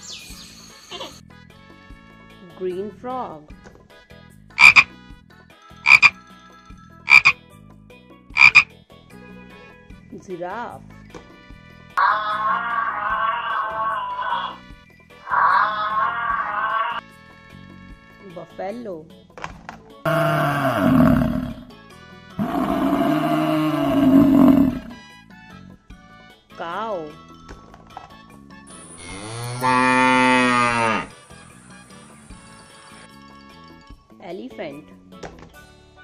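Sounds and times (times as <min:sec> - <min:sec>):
frog croaking: 0:04.6 - 0:04.9, 0:05.9 - 0:06.2, 0:07.1 - 0:07.4, 0:08.4 - 0:08.7, 0:20.1 - 0:21.7, 0:22.4 - 0:25.0
bison bellowing: 0:20.1 - 0:21.7, 0:22.4 - 0:25.0, 0:29.0 - 0:31.1.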